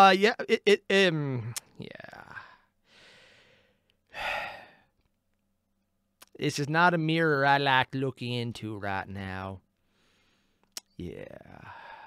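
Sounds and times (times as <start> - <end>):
man breathing and sighing: 1.4 - 5.0, 11.4 - 12.0.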